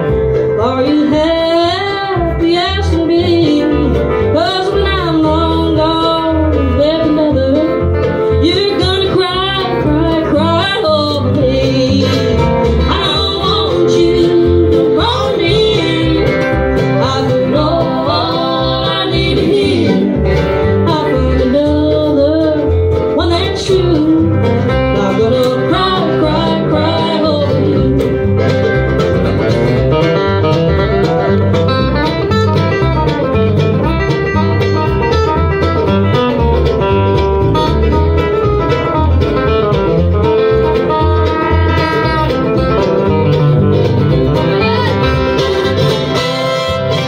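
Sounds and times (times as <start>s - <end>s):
acoustic guitars: 0.0s - 47.0s
bluegrass band playing: 0.0s - 47.0s
fiddle: 0.0s - 47.0s
mandolin: 0.0s - 47.0s
upright bass: 0.0s - 47.0s.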